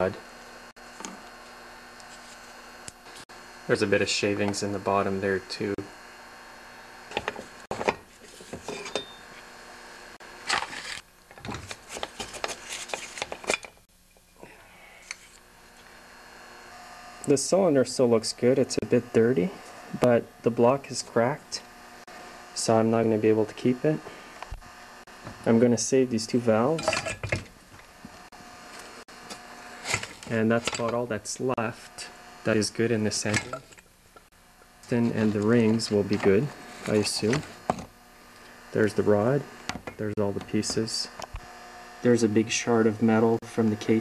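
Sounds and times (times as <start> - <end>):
faint steady hum: 0.0 - 44.0
metal parts clinking and scraping: 10.5 - 13.8.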